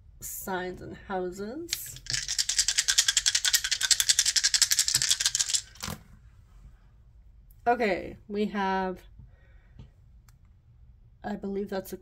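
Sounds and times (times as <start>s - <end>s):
dice clacking onto table: 1.7s - 6.0s
dice rattling in hands: 1.7s - 6.0s.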